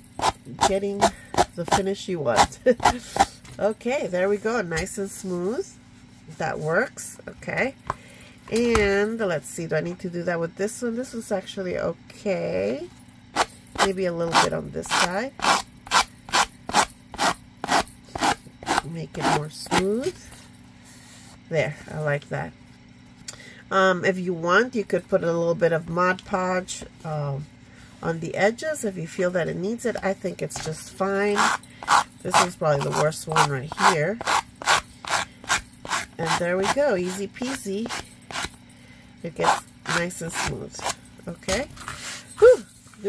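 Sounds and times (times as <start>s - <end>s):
sanding block on cardboard: 31.3s - 38.5s.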